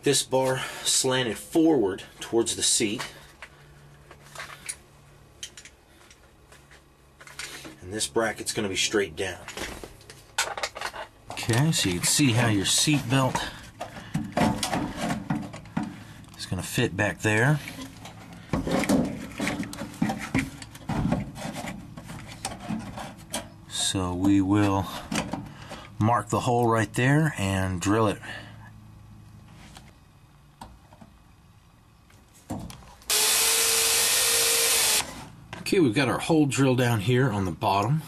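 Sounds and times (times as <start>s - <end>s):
steady low hum: 0.0s - 38.0s
metal bracket scraping and knocking: 17.7s - 24.0s.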